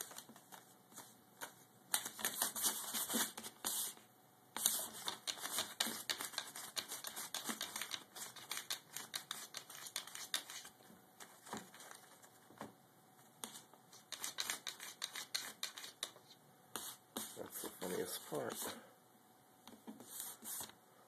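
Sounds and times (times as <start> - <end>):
paper rustling and crinkling: 4.6 - 12.7.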